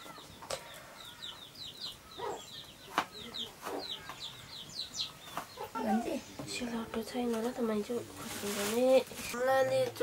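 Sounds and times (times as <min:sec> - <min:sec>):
chickens clucking: 0:00.0 - 0:10.0
chickens peeping: 0:00.0 - 0:10.0.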